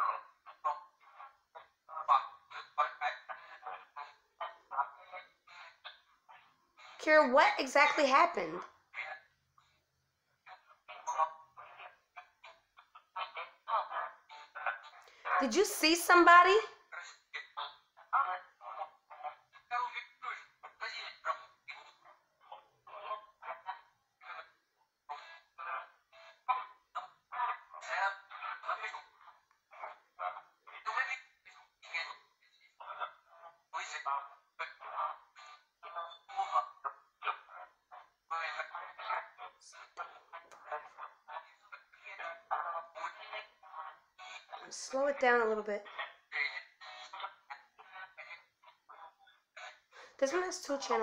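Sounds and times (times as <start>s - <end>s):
choppy voice fragments from speaker: 6.9s - 8.7s, 13.7s - 16.8s, 42.2s - 46.1s, 48.9s - 51.0s.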